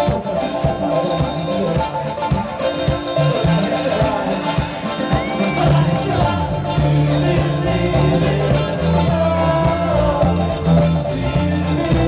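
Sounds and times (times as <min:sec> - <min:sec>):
live dance-punk band: 0:00.0 - 0:12.0
steady drum beat: 0:00.0 - 0:12.0.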